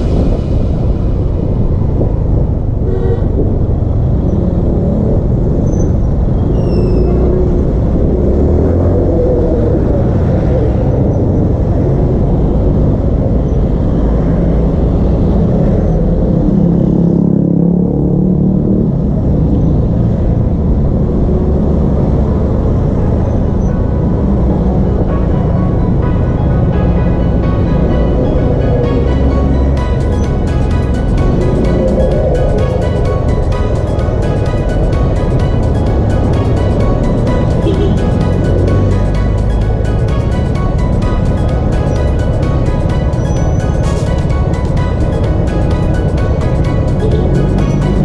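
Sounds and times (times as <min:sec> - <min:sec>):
music: 0:00.0 - 0:03.3, 0:22.4 - 0:48.0
wind noise: 0:00.0 - 0:48.0
motorcycle engine rumble: 0:07.2 - 0:48.0.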